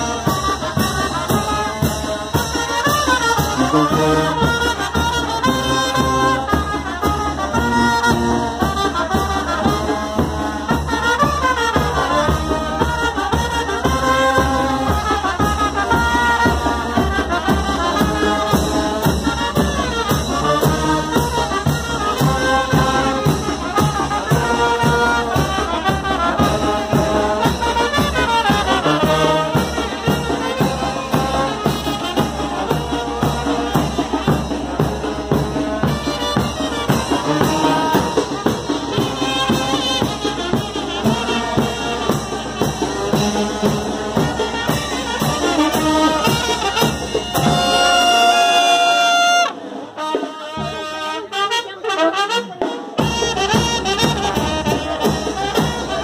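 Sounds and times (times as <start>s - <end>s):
brass melody: 0.0s - 56.0s
drum and cymbal beat: 0.0s - 56.0s.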